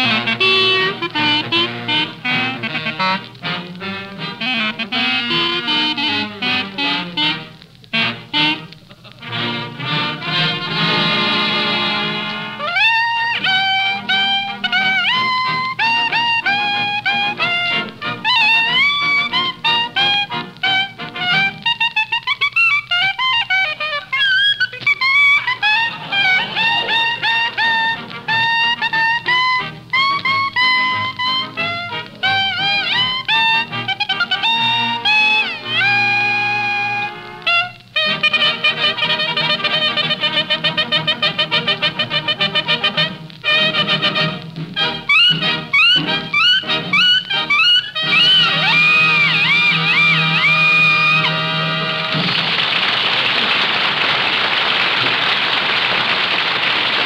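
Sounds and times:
swing band with brass and reeds: 0:00.0 - 0:55.9.

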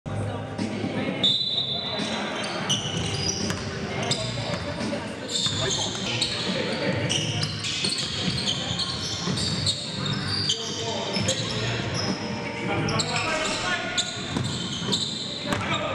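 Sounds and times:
sneakers squeaking on floor: 0:01.2 - 0:15.9
basketball bouncing: 0:03.4 - 0:03.7.

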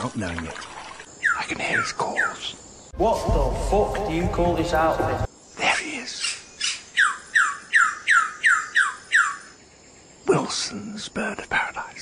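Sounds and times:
bird harsh squawks: 0:06.2 - 0:09.4.

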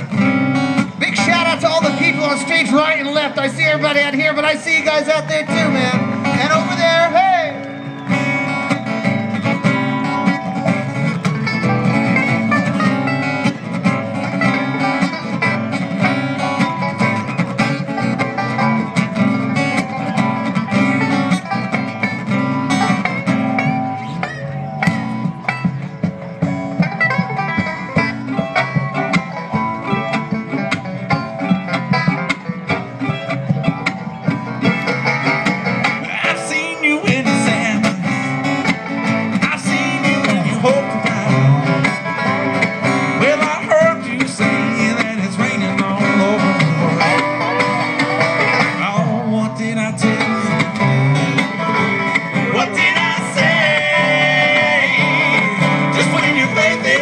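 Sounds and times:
acoustic guitar: 0:00.0 - 0:57.0
bluegrass band playing: 0:00.0 - 0:57.0
upright bass: 0:00.0 - 0:57.0.

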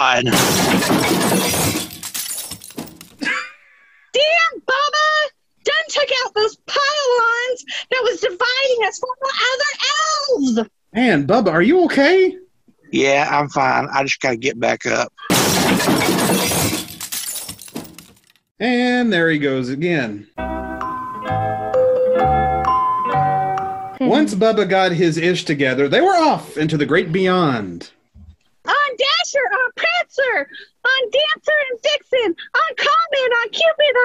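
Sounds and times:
things breaking and clattering: 0:00.3 - 0:03.2, 0:15.3 - 0:18.4
glass shattering: 0:00.3 - 0:03.3, 0:15.3 - 0:18.4.

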